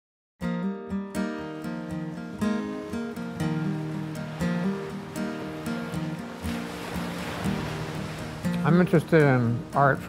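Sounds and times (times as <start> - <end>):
acoustic guitar plucked notes: 0.4 - 10.0
ocean surf: 1.4 - 10.0.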